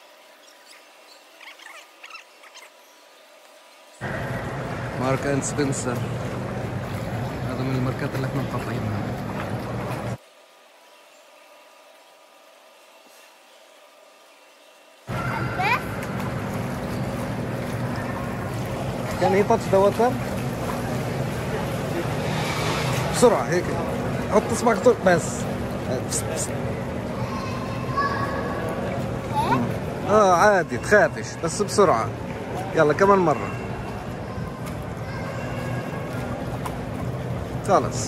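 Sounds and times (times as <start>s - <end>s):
low steady hum: 3.0s - 38.0s
water moving past boat hull: 4.0s - 10.2s, 15.1s - 31.0s, 31.6s - 38.0s.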